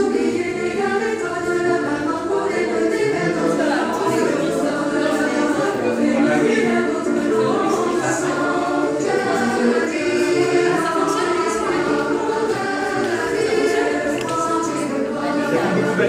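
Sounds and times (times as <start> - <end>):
choir singing long held notes: 0.0 - 16.0.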